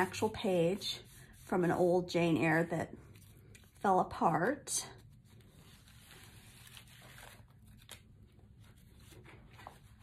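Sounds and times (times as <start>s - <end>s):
paper pages rustling: 5.0s - 10.0s.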